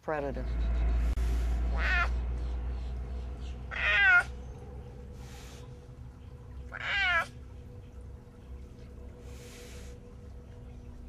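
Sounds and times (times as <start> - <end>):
clouded leopard meowing: 1.7 - 2.2, 3.7 - 4.4, 6.7 - 7.4.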